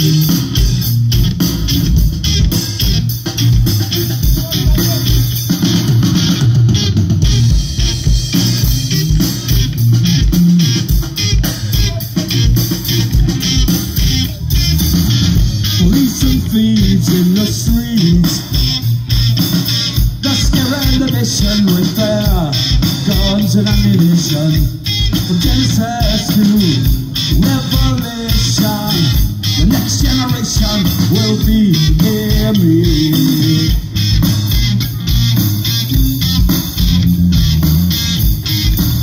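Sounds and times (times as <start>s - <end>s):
bass line: 0.0s - 39.0s
punk rock band playing: 0.0s - 39.0s.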